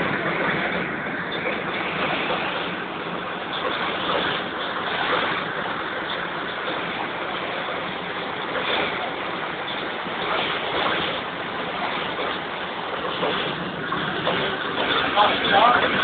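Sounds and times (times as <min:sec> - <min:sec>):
stream water rushing over rocks: 0:00.0 - 0:16.0.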